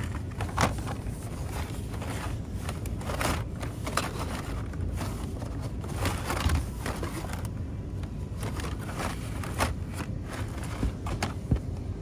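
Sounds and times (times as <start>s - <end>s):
blister packs rustling and scraping: 0.0s - 12.0s.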